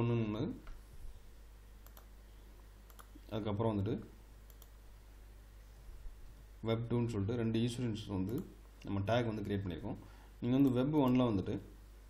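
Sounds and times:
low steady hum: 0:00.0 - 0:12.0
computer mouse clicks: 0:01.8 - 0:02.1, 0:02.9 - 0:03.2, 0:04.5 - 0:04.8.

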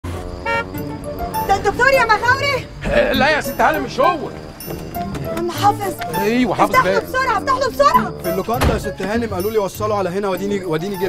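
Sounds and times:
background music: 0:00.0 - 0:11.0
car horn toot: 0:00.4 - 0:09.0.

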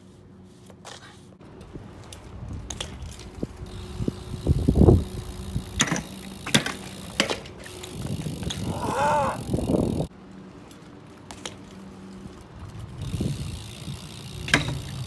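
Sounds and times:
bike tyres rolling on concrete: 0:00.0 - 0:15.0
bike grinding along concrete ledge: 0:00.3 - 0:15.0
bike landing clacks: 0:00.8 - 0:15.0.

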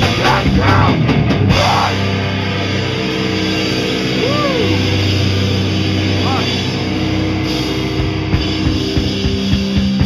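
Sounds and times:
electric guitar and bass drone: 0:00.0 - 0:10.0.

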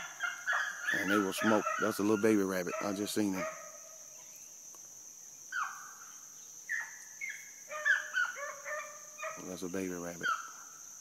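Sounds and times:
hounds baying: 0:00.0 - 0:03.9, 0:07.7 - 0:09.6
high insect drone: 0:00.0 - 0:11.0.

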